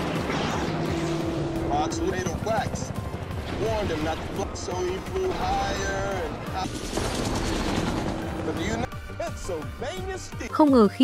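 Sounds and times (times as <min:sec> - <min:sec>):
helicopter engines: 0:00.0 - 0:09.9.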